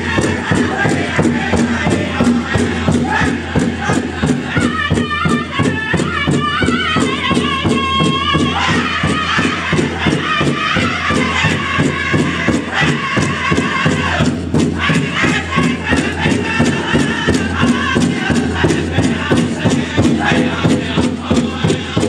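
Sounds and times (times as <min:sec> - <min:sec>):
fast steady drum beat: 0:00.0 - 0:22.0
men singing high and wavering: 0:00.0 - 0:22.0.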